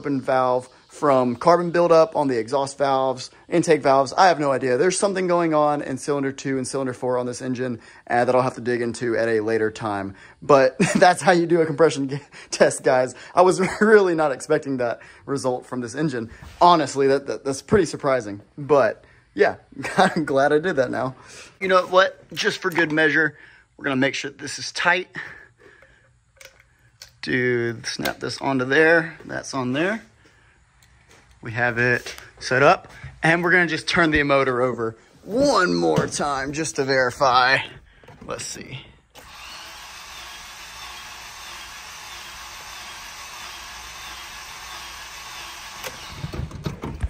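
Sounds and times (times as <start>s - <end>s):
starter motor cranking engine: 39.2s - 47.0s.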